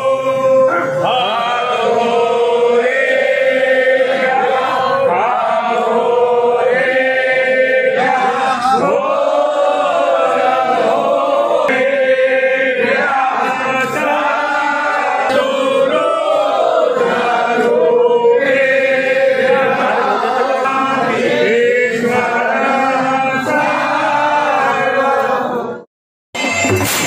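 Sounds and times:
men chanting a hymn in unison: 0:00.0 - 0:25.8.

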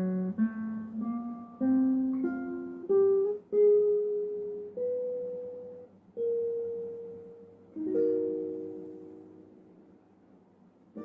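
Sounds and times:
classical guitar melody: 0:00.0 - 0:09.9.

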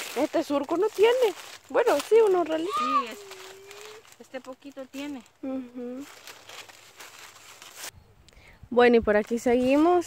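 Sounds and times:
dry leaves rustling and crackling: 0:00.0 - 0:07.9, 0:09.2 - 0:10.0.

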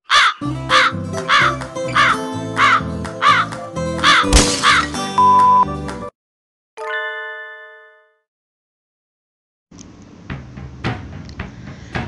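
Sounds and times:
crow cawing: 0:00.0 - 0:04.9.

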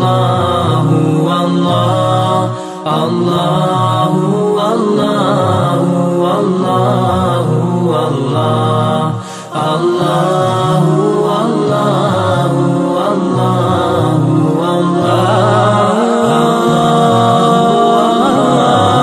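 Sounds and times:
devotional chanting: 0:00.0 - 0:19.0
sustained accompaniment: 0:00.0 - 0:19.0.

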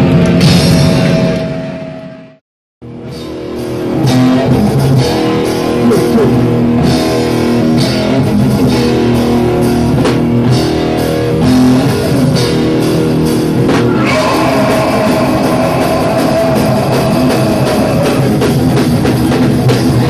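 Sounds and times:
live rock band playing: 0:00.0 - 0:01.8, 0:02.9 - 0:20.0.

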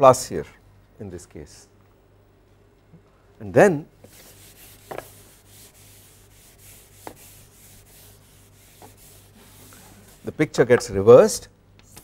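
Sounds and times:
duster rubbing on chalkboard: 0:04.0 - 0:10.5.

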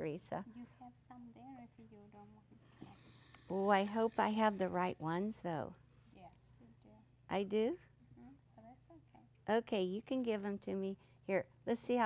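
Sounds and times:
conversation: 0:00.0 - 0:12.0.

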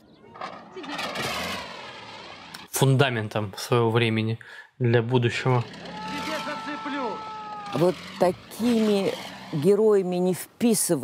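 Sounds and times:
lorry engine running: 0:00.3 - 0:02.8, 0:05.4 - 0:10.5.

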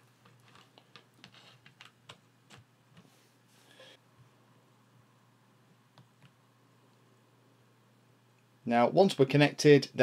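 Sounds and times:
low steady hum: 0:02.0 - 0:09.3.

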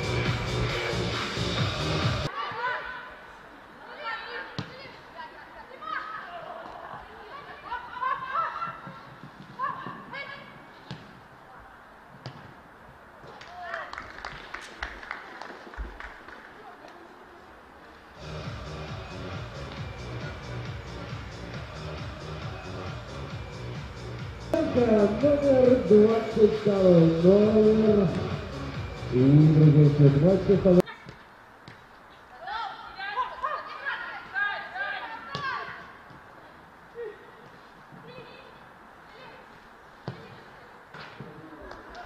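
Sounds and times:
music with steady beat: 0:00.0 - 0:02.3, 0:18.2 - 0:30.8
ball being kicked: 0:10.8 - 0:11.2, 0:12.2 - 0:12.5.

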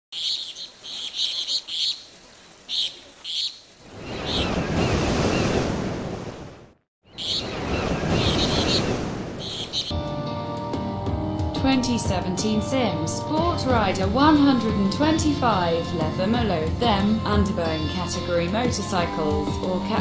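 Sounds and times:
birds chirping: 0:00.1 - 0:05.6, 0:07.0 - 0:10.0
ocean surf rushing: 0:03.8 - 0:09.9.

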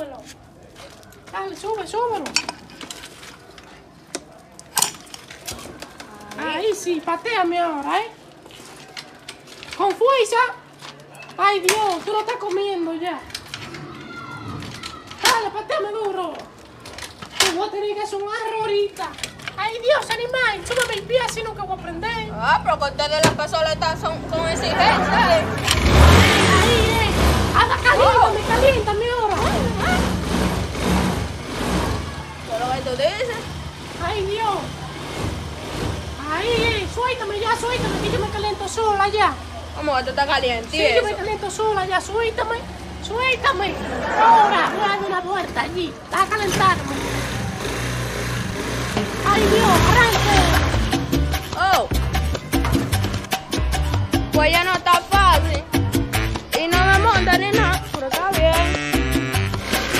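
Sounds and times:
scooter clicks and knocks: 0:08.4 - 0:21.6
scooter engine droning: 0:23.7 - 0:41.3, 0:46.1 - 0:51.3, 0:58.8 - 0:59.9.

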